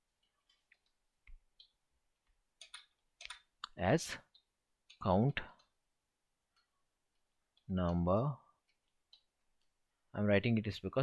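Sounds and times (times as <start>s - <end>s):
keyboard keystrokes clicking: 2.6s - 3.5s.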